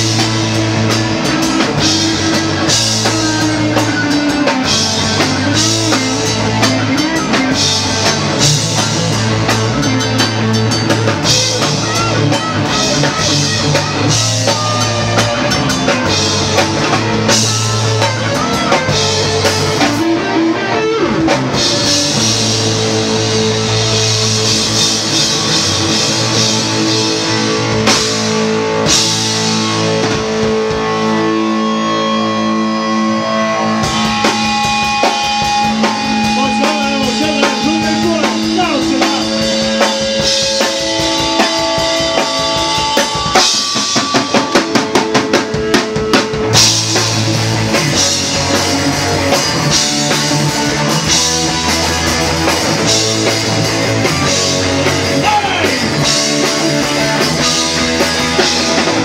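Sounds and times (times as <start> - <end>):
electric guitars sustained notes: 0.0 - 59.0
punk rock band playing: 0.0 - 59.0.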